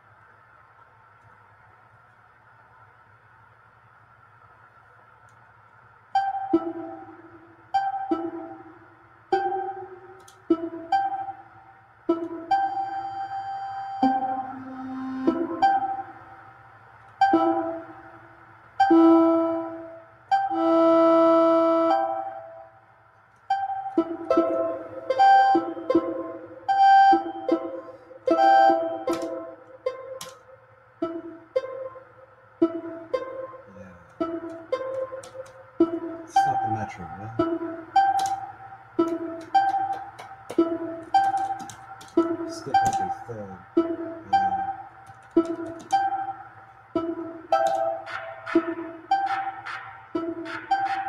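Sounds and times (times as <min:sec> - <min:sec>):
long held synth tone: 0:09.4 - 0:18.2, 0:18.8 - 0:22.8, 0:23.5 - 0:29.6, 0:35.8 - 0:41.4
short electronic synth notes: 0:13.8 - 0:16.5, 0:35.8 - 0:41.6, 0:42.2 - 0:51.0.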